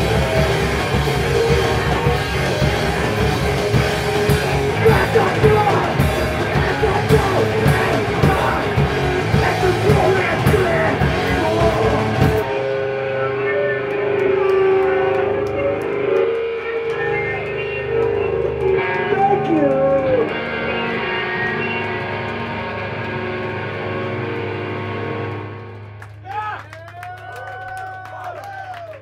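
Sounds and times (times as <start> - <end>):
electric guitar held notes: 0.0 - 26.2.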